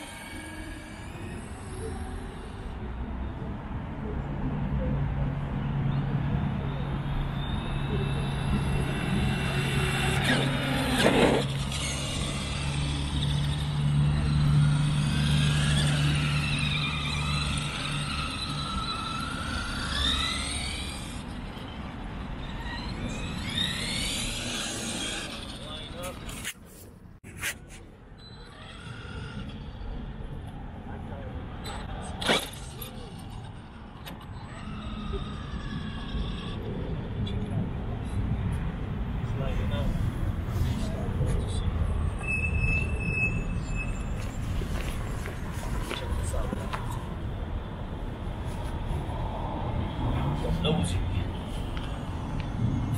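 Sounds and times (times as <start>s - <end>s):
electric motors whining: 0.0s - 3.5s, 6.5s - 26.4s.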